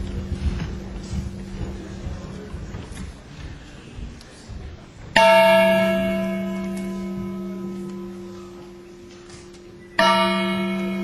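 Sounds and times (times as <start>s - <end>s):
metal percussion strike ringing: 5.2s - 11.0s.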